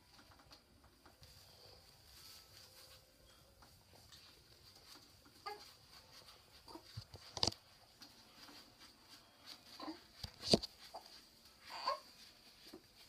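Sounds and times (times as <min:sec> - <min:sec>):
cloth rustling: 0:00.9 - 0:13.0.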